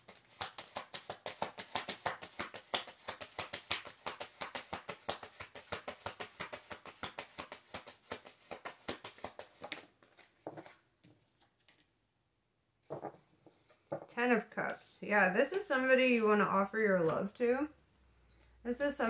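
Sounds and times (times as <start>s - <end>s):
cards being shuffled: 0.0s - 11.9s.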